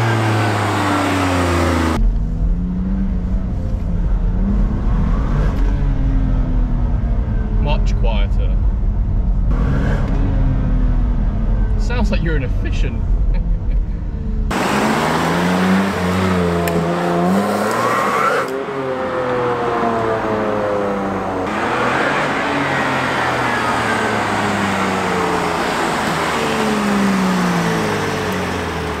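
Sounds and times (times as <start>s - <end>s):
car engine accelerating: 0.0s - 29.0s.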